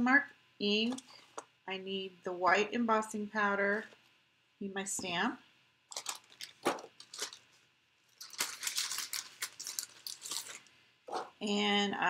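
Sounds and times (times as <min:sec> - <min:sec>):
packaging crinkling and rustling: 0:05.9 - 0:11.3.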